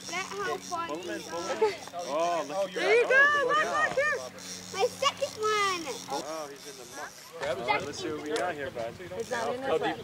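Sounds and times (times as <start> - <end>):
adults and children exclaiming: 0.1 - 6.3.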